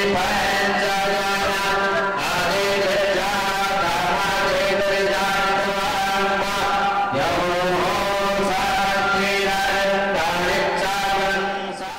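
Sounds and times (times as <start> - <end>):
devotional mantra chanting with music: 0.0 - 11.9.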